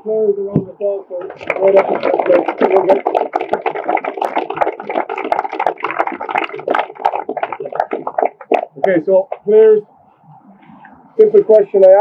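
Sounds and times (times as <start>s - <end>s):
people applauding: 1.1s - 9.4s.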